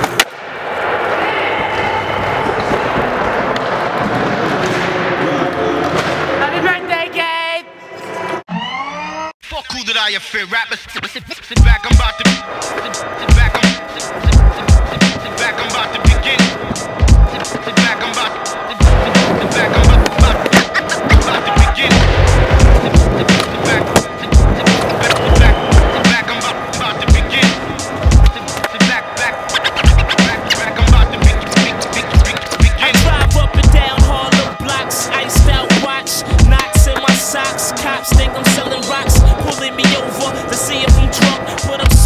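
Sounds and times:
skateboard wheels rolling: 0.0s - 6.3s, 12.0s - 42.0s
hip-hop music with kick drum: 9.7s - 42.0s.

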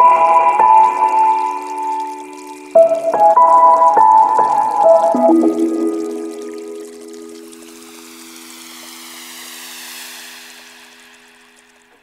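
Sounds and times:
rushing water-like wash: 5.1s - 12.0s.

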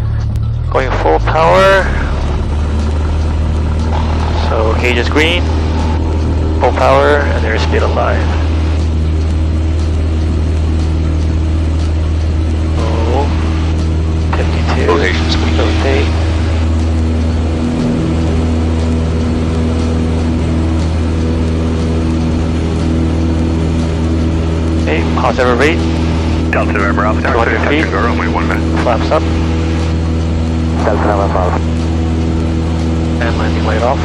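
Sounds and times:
light aircraft engine droning: 0.0s - 34.0s.

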